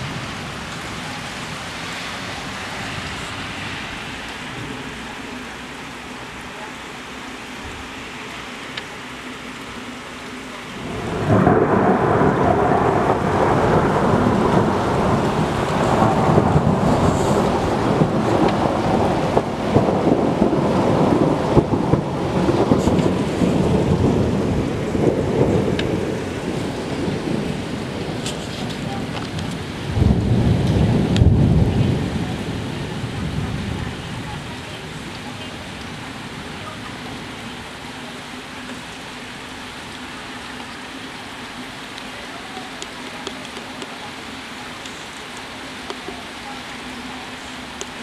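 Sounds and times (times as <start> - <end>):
rain falling on street: 0.0 - 48.0
thunder rumbling: 10.7 - 37.9.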